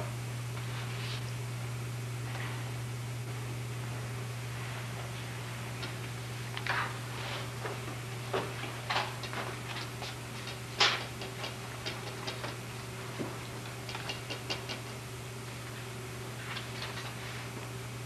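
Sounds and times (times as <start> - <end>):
low electrical hum: 0.0 - 18.0
small clicks taps and rustles: 7.6 - 12.6.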